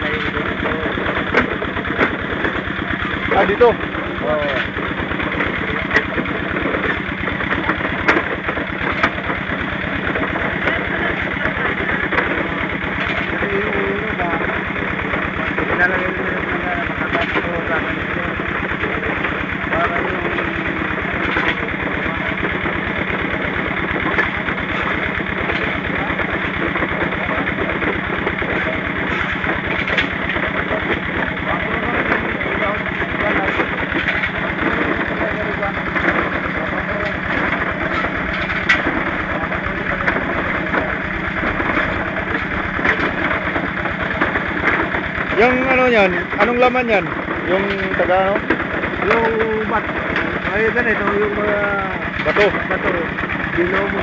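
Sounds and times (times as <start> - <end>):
small engine running steadily: 0.0 - 54.0.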